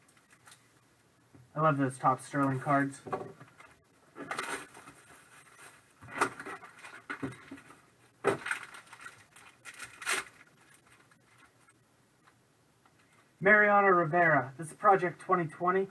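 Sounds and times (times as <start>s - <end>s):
foil pack crinkling: 4.2s - 11.7s.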